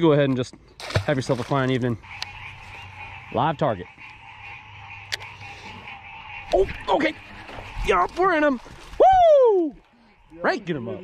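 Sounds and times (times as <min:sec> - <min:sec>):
frogs calling: 0:00.7 - 0:09.0, 0:09.7 - 0:11.0.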